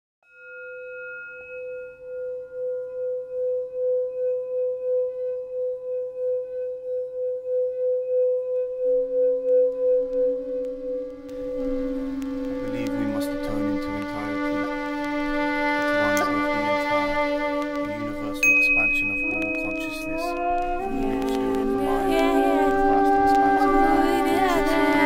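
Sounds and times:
singing bowl ringing: 0.2 - 15.6, 18.4 - 23.3
music: 0.2 - 25.0
lower tone: 0.3 - 25.0.

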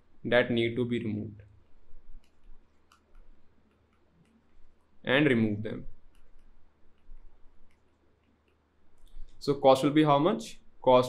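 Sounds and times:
stylus tapping on pen tablet: 1.6 - 4.8, 6.0 - 8.6.

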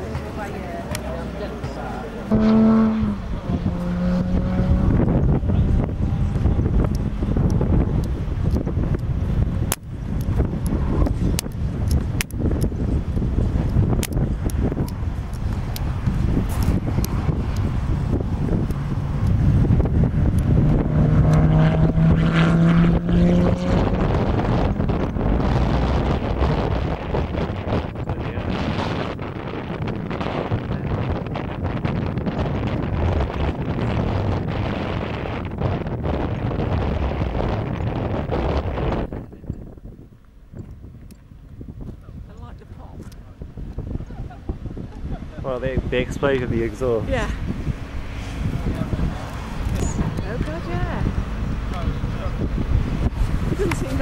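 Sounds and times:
wind buffeting microphone: 0.0 - 54.0
sports car engine accelerating past: 0.1 - 8.5, 15.6 - 27.7.

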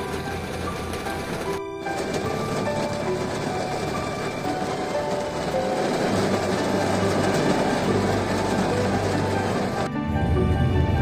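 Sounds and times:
rain falling on a car: 0.0 - 9.9
background music: 0.0 - 11.0.

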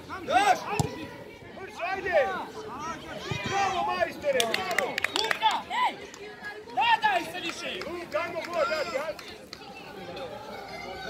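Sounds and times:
children shouting: 10.1 - 11.0.

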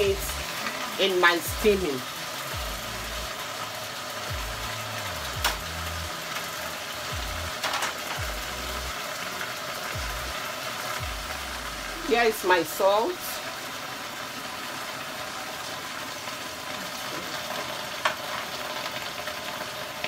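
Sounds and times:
meat sizzling in a pot: 0.0 - 20.0.

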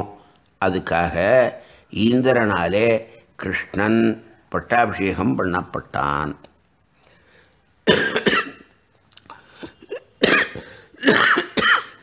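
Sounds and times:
man coughing: 7.8 - 8.7, 9.4 - 12.0.

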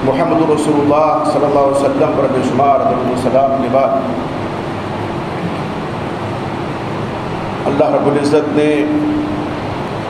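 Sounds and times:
electric fans whirring: 0.0 - 10.0.

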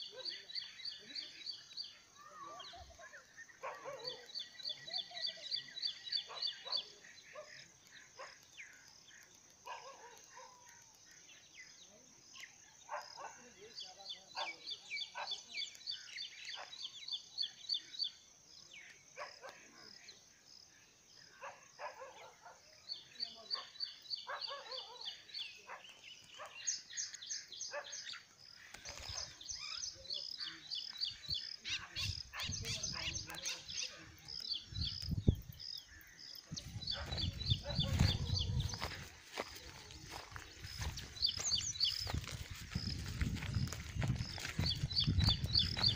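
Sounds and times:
birds chirping: 0.0 - 45.9
low wind rumble on microphone: 34.7 - 35.6, 36.5 - 39.0, 41.6 - 45.9.

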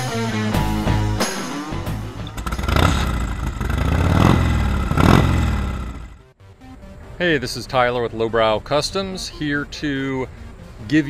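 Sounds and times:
rock music: 0.0 - 2.9
motorcycle engine: 0.4 - 6.4.

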